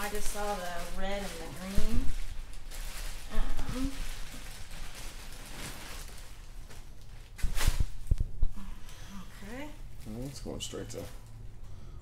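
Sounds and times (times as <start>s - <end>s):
plastic bag rustling: 0.0s - 8.9s, 9.7s - 11.4s.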